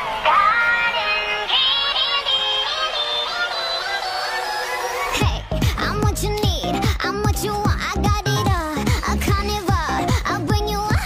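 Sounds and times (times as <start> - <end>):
sped-up song with high singing: 0.0 - 11.0.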